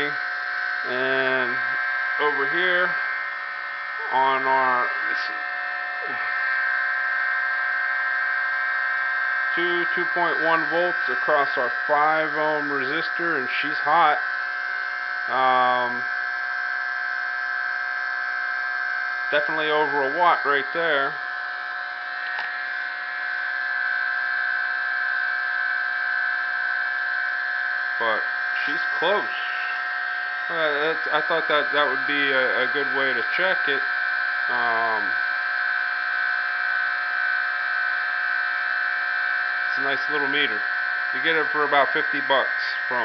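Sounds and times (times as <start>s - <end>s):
motor high-pitched whine: 0.0s - 43.0s.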